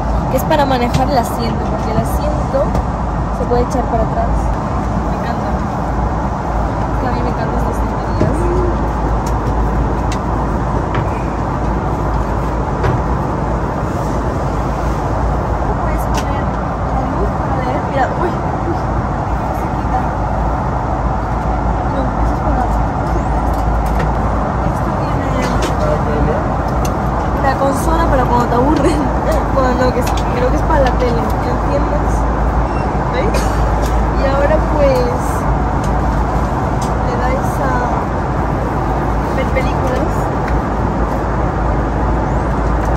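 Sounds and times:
airliner cabin engine and airflow noise: 0:00.0 - 0:42.9.

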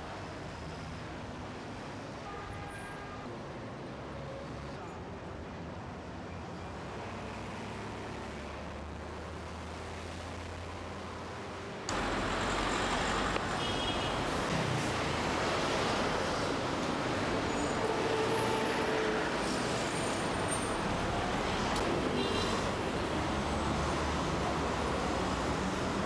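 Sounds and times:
street traffic noise: 0:00.0 - 0:26.0
bus engine running: 0:06.7 - 0:17.9.

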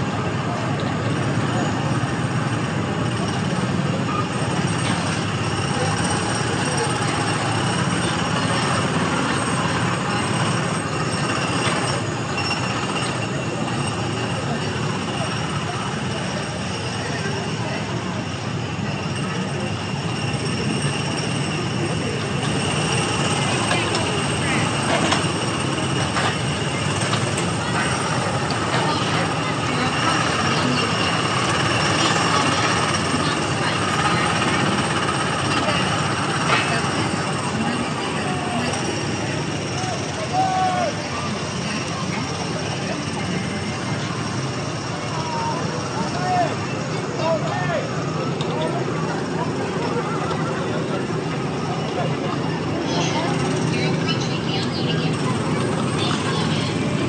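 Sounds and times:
people's voices: 0:00.0 - 0:57.0
small gasoline engines droning: 0:00.0 - 0:57.0.

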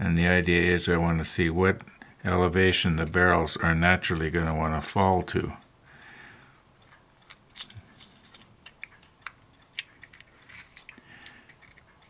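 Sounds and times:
plastic parts clicking: 0:06.8 - 0:12.0.

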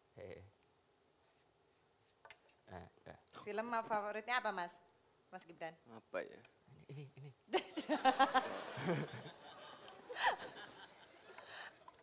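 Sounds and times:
marker scratching on paper: 0:01.2 - 0:02.7.

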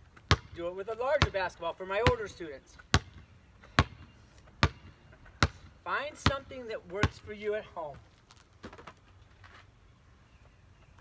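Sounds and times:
basketball bouncing on concrete: 0:00.2 - 0:07.4.

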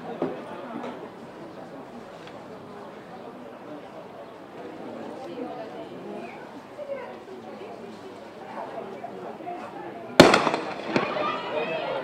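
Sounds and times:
starting pistol shot: 0:10.2 - 0:11.2.

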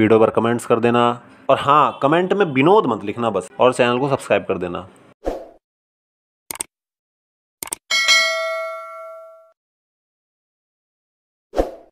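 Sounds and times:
notification bell ding: 0:07.9 - 0:09.6.

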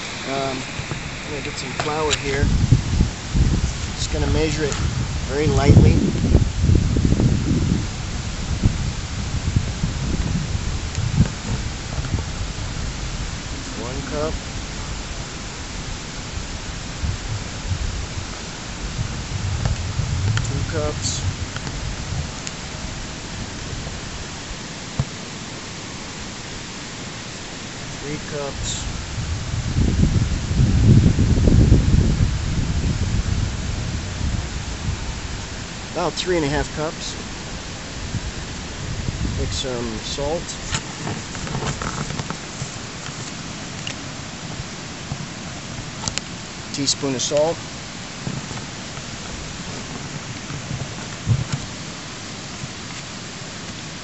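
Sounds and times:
faint voices: 0:00.0 - 0:02.6
low rumbling: 0:00.0 - 0:44.8
outdoor hiss: 0:00.0 - 0:54.0.

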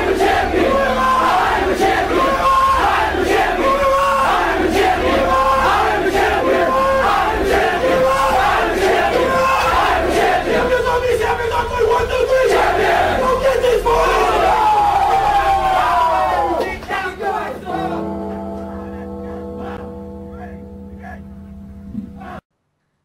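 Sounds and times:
crowd shouting and cheering: 0:00.0 - 0:21.3, 0:22.1 - 0:22.4.

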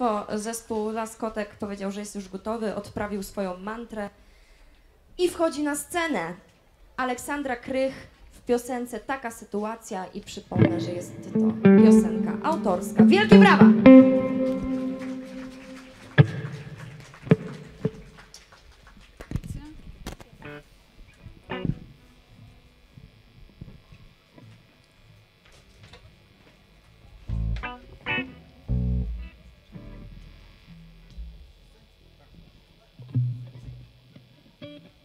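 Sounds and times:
electric guitar notes: 0:10.5 - 0:18.2, 0:27.3 - 0:31.6
bass guitar notes: 0:10.6 - 0:18.1, 0:27.2 - 0:31.7.

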